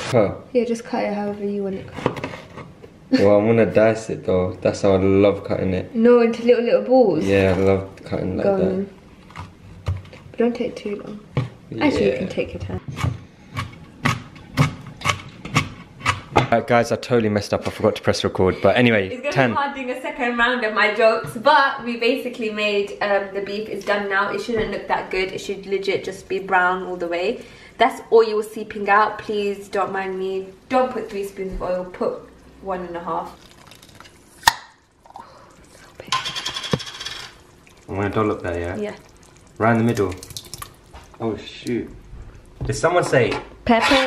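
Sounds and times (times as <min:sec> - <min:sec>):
knife chopping on cutting board: 0:12.9 - 0:16.5.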